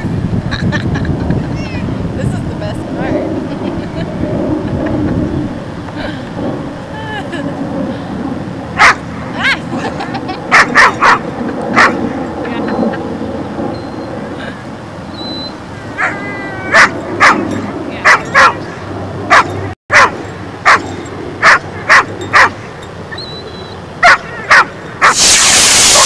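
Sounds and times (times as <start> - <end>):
dog barking: 8.8 - 9.0, 10.5 - 11.2, 11.8 - 12.0, 16.0 - 17.4, 18.0 - 18.6, 19.3 - 22.6, 24.0 - 25.2
dog whining: 15.1 - 18.7.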